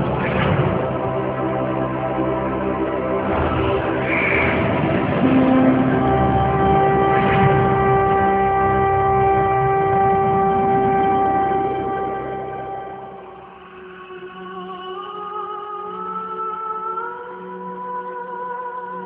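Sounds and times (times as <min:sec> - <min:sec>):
low rumble: 0:00.0 - 0:13.4
sustained organ-like chord: 0:00.0 - 0:17.9.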